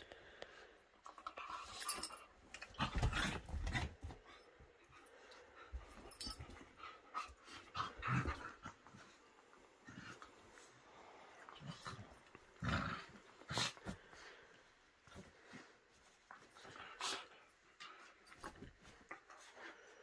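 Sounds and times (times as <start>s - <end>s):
dogs play-fighting: 1.0s - 20.0s.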